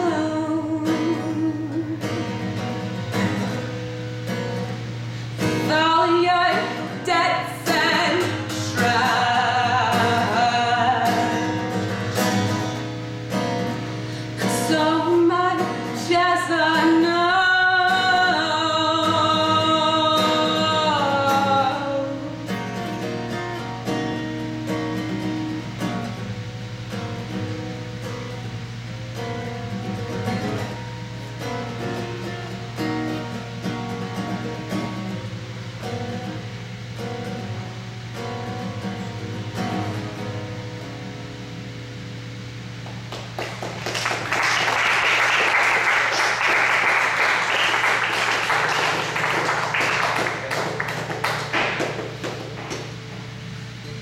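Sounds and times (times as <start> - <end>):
finger-picked acoustic guitar: 0.0 - 54.0
audience applauding: 42.8 - 53.0.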